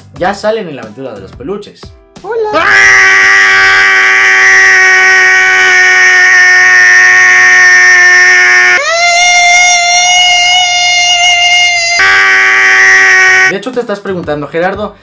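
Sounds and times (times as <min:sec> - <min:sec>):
loud steady-pitched scream: 0:02.5 - 0:13.5.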